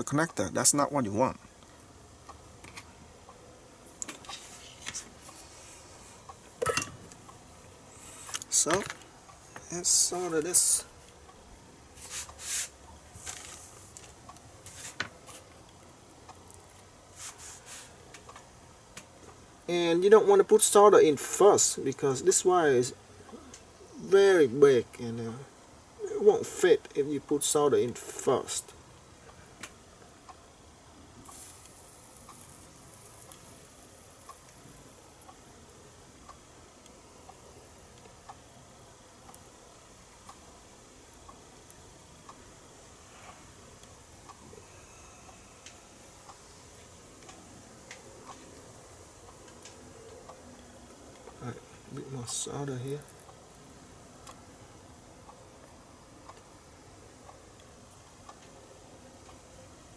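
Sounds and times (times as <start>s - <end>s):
soldering iron sizzle: 0.4s - 59.9s
soft rustles of handling: 3.9s - 6.4s, 11.9s - 15.7s, 16.6s - 18.2s
faint ticking: 17.9s - 59.9s.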